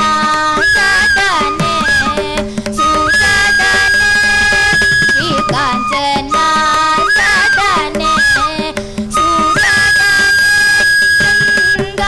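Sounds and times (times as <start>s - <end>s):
bamboo flute melody: 0.0s - 12.0s.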